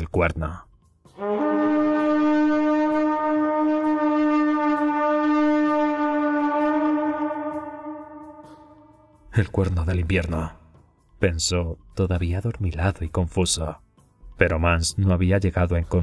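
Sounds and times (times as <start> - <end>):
deep horn blast: 1.2 - 9.2.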